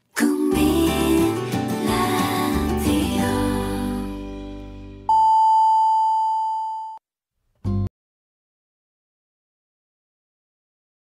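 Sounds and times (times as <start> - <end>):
jingle music: 0.2 - 5.1
long loud time-signal beep: 5.1 - 7.0.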